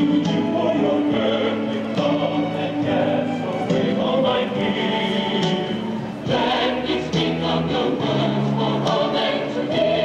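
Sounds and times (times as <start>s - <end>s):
choir singing held chords: 0.0s - 10.0s
choral accompaniment: 0.0s - 10.0s.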